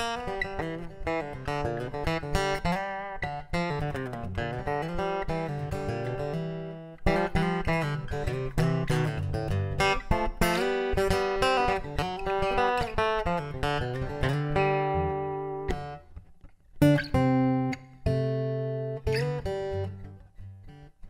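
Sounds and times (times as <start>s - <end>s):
acoustic guitar notes and chords: 0.0s - 21.0s.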